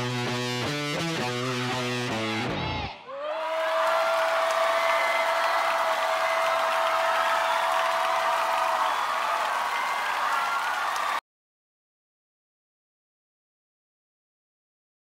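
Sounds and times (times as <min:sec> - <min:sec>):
audience applauding and cheering: 0:03.1 - 0:11.2.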